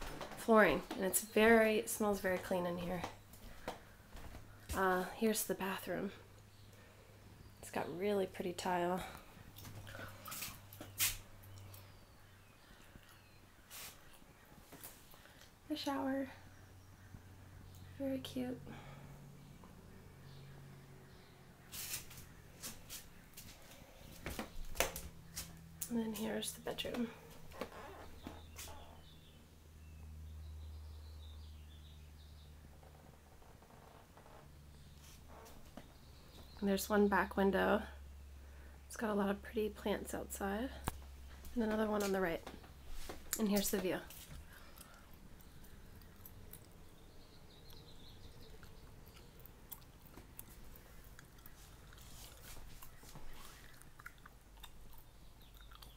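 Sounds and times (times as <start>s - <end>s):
low steady hum: 0.0s - 55.9s.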